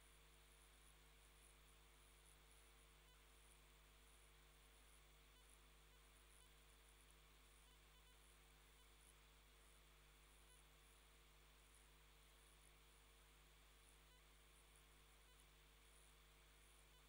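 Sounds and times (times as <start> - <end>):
faint electrical hum and hiss: 0.0 - 17.0.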